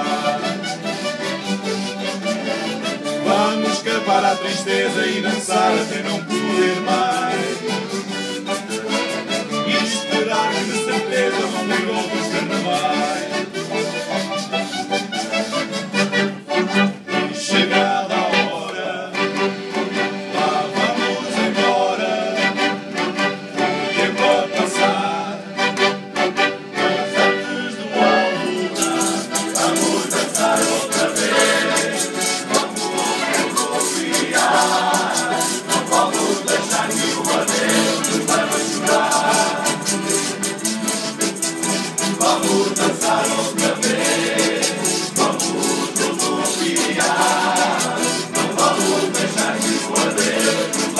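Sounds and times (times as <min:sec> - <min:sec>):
folk band playing dance music: 0:00.0 - 0:50.9.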